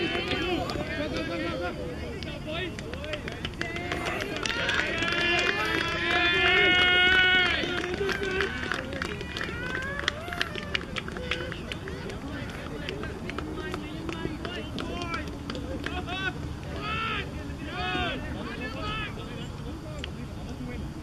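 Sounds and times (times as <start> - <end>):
voices shouting and cheering: 0.0 - 21.0.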